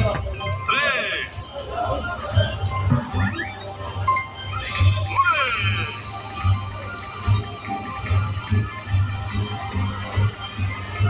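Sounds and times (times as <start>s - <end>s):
slot machine bonus music: 0.0s - 11.0s.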